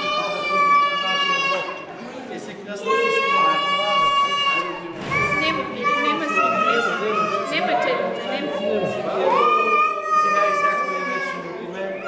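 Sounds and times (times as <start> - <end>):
children calling out: 0.0 - 2.0, 2.7 - 12.0
crowd chatter: 0.0 - 12.0.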